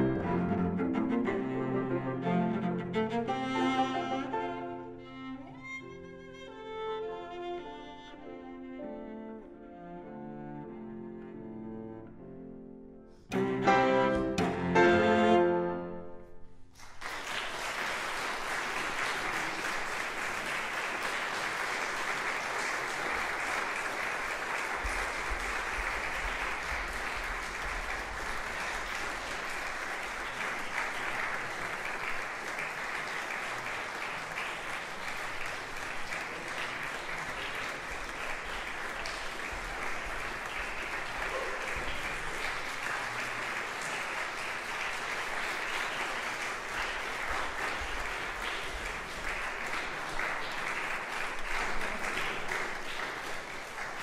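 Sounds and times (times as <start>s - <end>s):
audience applauding: 0.0s - 4.5s, 16.7s - 54.0s.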